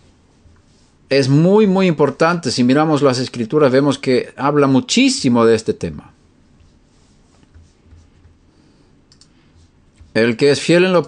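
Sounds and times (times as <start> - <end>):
low steady hum: 0.0 - 11.0
soft clicks: 9.1 - 9.4.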